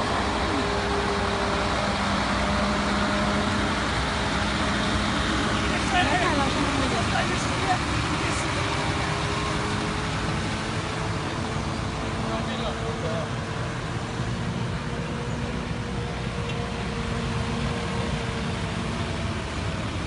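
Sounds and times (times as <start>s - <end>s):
truck diesel engine drone: 0.0s - 20.0s
voices: 5.4s - 13.5s.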